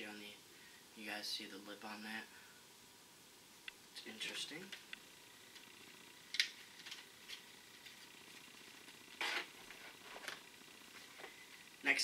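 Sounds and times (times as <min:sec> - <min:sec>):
plastic packaging rustle: 0:06.4 - 0:11.4.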